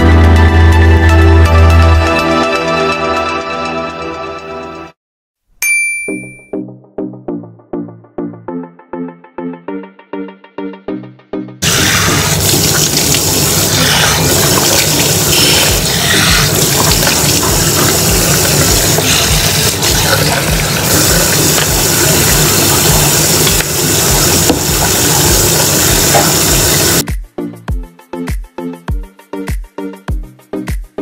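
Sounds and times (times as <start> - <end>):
tap water running into washbasin: 11.6 - 27.0
background music with low beat: 24.1 - 31.0.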